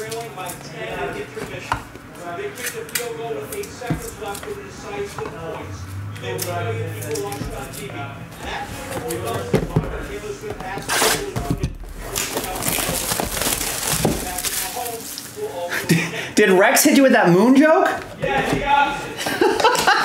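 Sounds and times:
plastic shrink wrap crinkling: 10.1 - 15.7.

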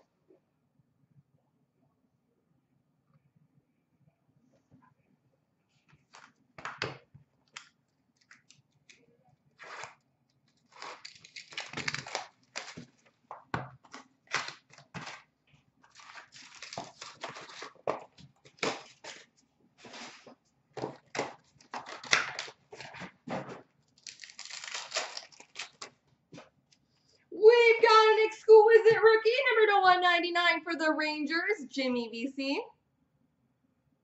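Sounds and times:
card pack wrappers torn and crinkled: 9.6 - 13.1, 13.9 - 15.3, 15.9 - 20.2, 20.9 - 23.0, 23.9 - 26.0.

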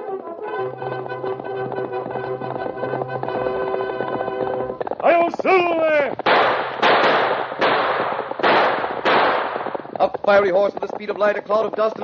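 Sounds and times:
echoing gunshots: 6.2 - 10.0.

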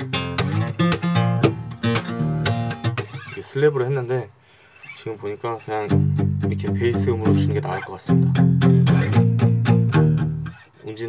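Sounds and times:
acoustic guitar bass notes: 0.0 - 3.5, 5.8 - 10.7.

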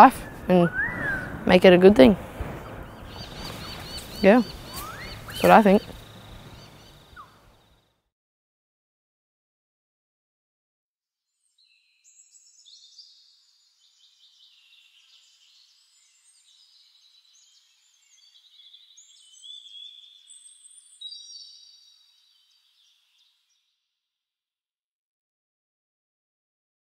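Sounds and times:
birds chirping and trilling: 0.0 - 7.8, 11.6 - 23.7.

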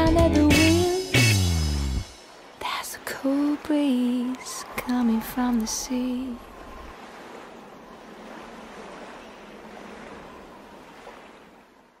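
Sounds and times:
sea surf washing over rocks: 2.2 - 11.6.

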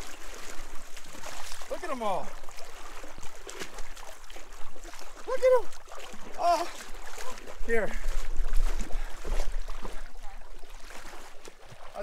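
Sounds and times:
water splashing around wading legs: 0.0 - 12.0.

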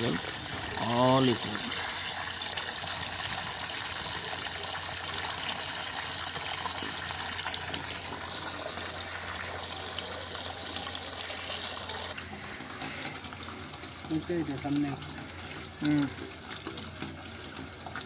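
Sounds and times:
water gushing and churning: 0.0 - 18.0.

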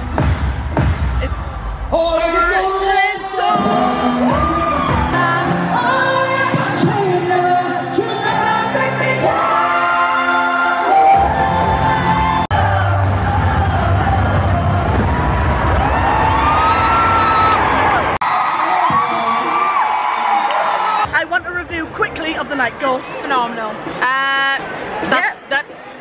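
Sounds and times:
live pop concert music: 0.0 - 24.6
women singing: 3.4 - 14.1.

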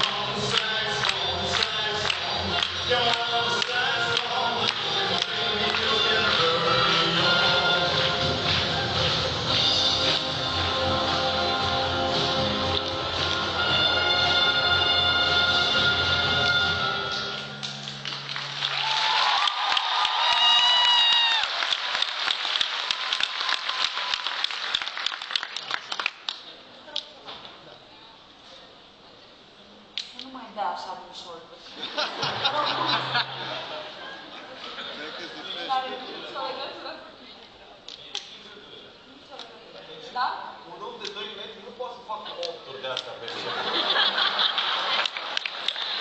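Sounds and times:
audience clapping and cheering: 0.0 - 14.0, 16.2 - 26.5, 43.3 - 46.0
long shouted cheer: 18.7 - 21.8, 22.8 - 24.5.

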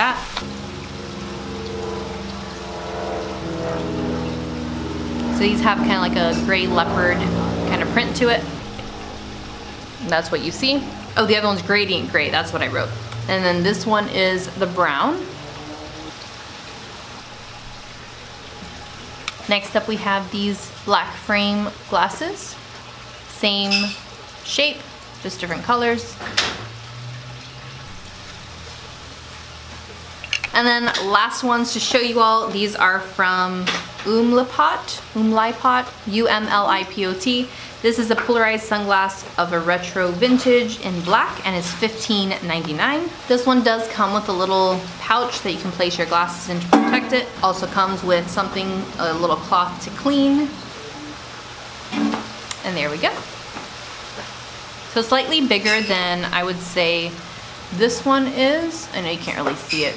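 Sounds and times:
mechanical drone: 0.0 - 19.8, 41.3 - 51.6
low hum with faint hiss: 0.0 - 59.9.

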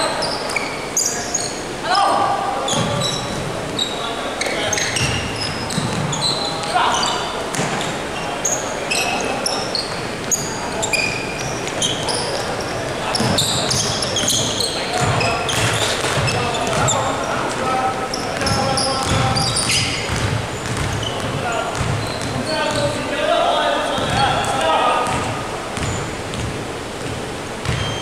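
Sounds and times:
sneakers squeaking: 0.0 - 23.3, 23.9 - 28.0
players calling out: 0.0 - 25.9
basketball bouncing: 5.0 - 6.8, 7.5 - 7.9, 12.4 - 17.0, 18.4 - 23.0, 24.0 - 28.0.

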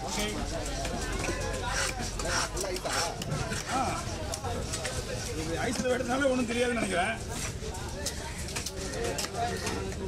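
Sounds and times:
murmuring voices: 0.0 - 10.0.

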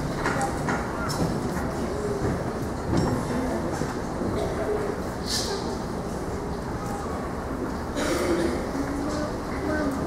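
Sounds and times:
murmur of crowd chatting: 0.0 - 10.0.

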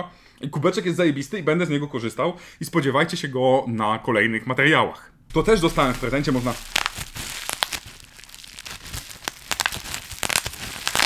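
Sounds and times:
bubble wrap crinkling: 5.3 - 11.0.

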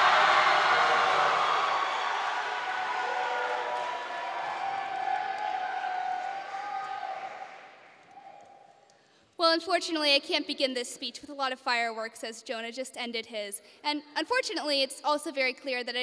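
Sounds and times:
audience applauding: 0.0 - 8.7.

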